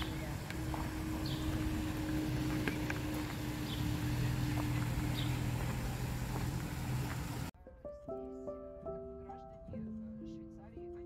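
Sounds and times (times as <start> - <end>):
bird calling high note: 0.0 - 5.6
steady low hum: 0.0 - 7.5.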